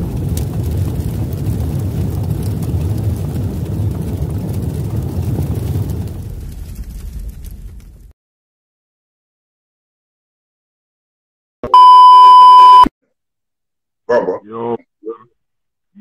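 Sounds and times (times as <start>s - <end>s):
deep steady rumble: 0.0s - 8.1s.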